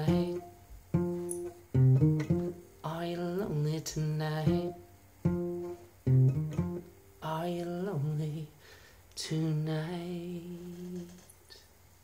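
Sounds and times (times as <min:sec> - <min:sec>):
man singing a held note: 0:09.2 - 0:11.3.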